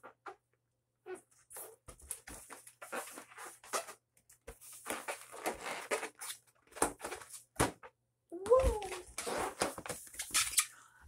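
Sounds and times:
rubber balloon squeaking: 2.8 - 4.0, 4.8 - 6.4, 8.5 - 10.7.

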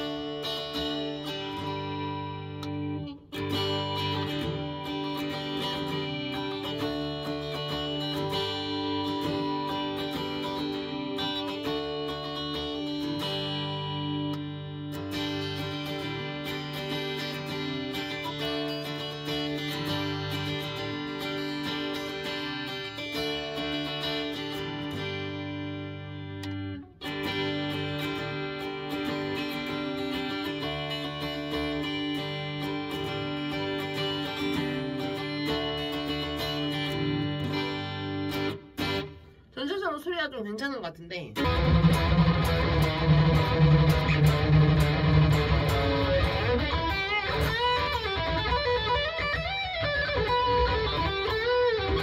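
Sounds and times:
electric guitar chords and arpeggios: 0.0 - 39.6, 41.3 - 52.0.

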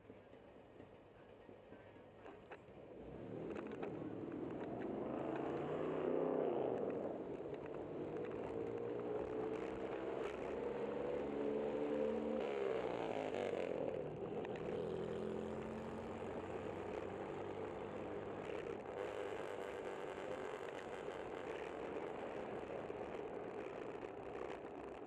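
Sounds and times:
car engine passing: 3.0 - 20.0.

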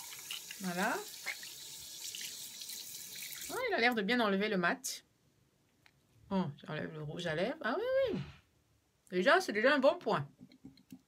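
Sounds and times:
tap water running into sink: 0.0 - 3.6.

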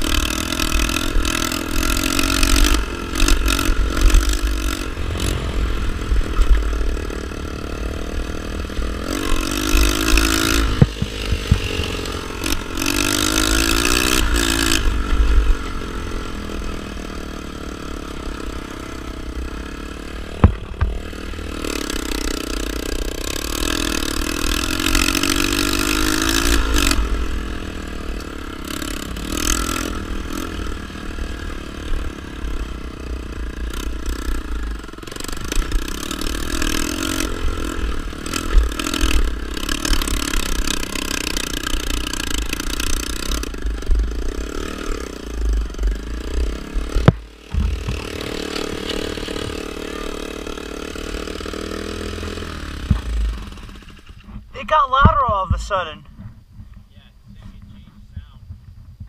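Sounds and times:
dirt bike engine revving: 0.0 - 56.0
low rumble on microphone: 55.4 - 59.0.

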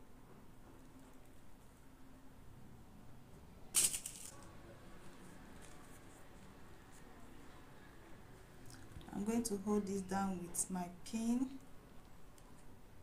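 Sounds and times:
fabric and paper rustling: 5.0 - 7.5.

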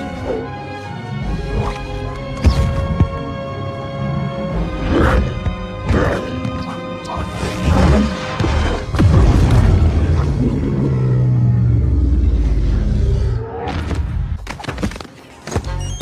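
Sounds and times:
trailer score with booming hits: 7.7 - 11.9.

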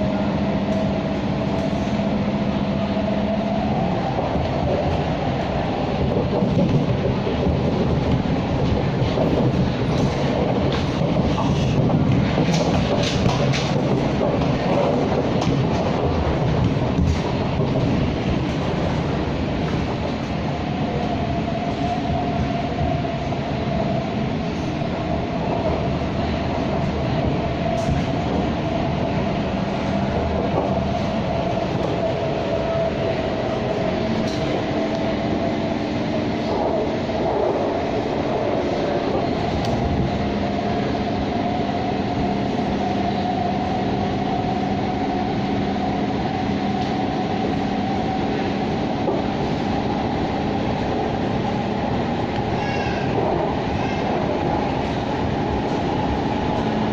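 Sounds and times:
train wheels rumbling: 0.0 - 56.9.

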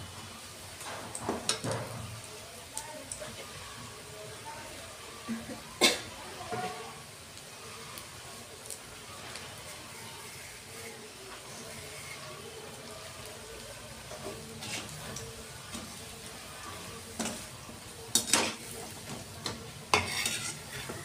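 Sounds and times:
fritters sizzling in hot oil: 0.0 - 21.0.

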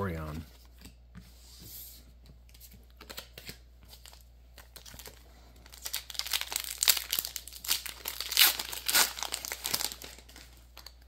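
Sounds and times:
foil wrapper crinkling: 4.0 - 11.0.

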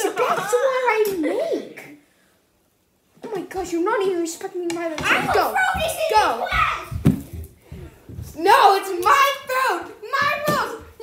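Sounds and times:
child talking: 0.0 - 1.9, 3.2 - 7.0, 8.3 - 11.0.

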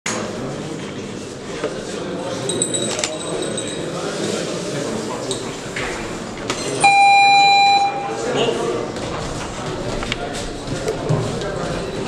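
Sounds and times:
electronic timer beep: 6.8 - 8.3.

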